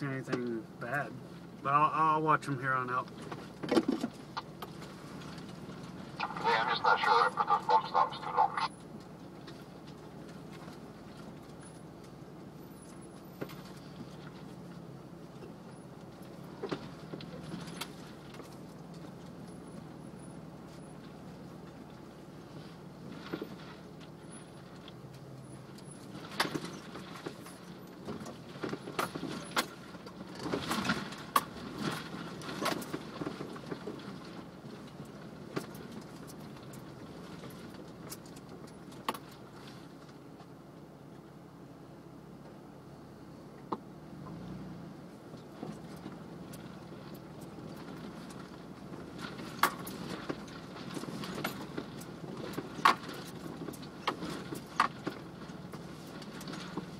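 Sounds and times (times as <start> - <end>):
vehicle engine running steadily: 0.0 - 56.9
clatters and knocks from vehicle body: 3.0 - 6.2, 8.8 - 41.3, 43.6 - 56.9.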